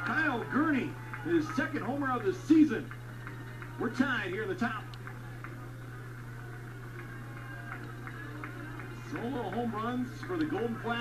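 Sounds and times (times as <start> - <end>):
faint background ambience: 0.0 - 11.0.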